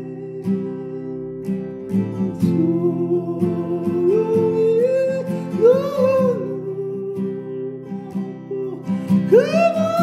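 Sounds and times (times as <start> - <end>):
acoustic guitar: 0.0 - 10.0
person singing long held notes: 2.1 - 10.0.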